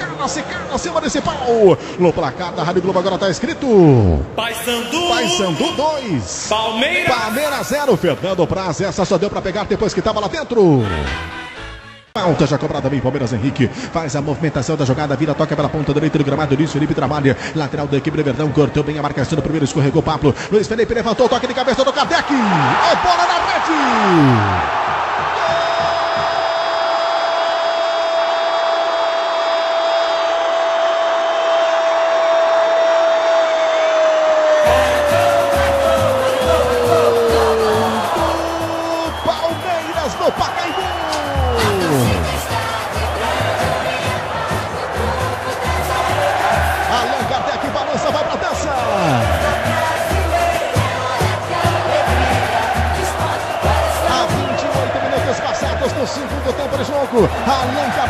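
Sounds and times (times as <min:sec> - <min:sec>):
radio commentator shouting goal: 0:03.8 - 0:08.6, 0:10.6 - 0:11.3, 0:22.2 - 0:24.8, 0:34.6 - 0:42.8, 0:46.9 - 0:49.8
celebration music with steady beat: 0:04.4 - 0:08.5, 0:34.6 - 0:47.6, 0:48.2 - 0:58.0.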